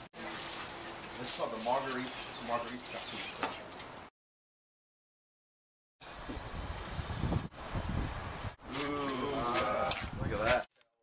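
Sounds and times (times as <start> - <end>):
wind buffeting microphone: 6.2 - 8.7, 9.9 - 10.6.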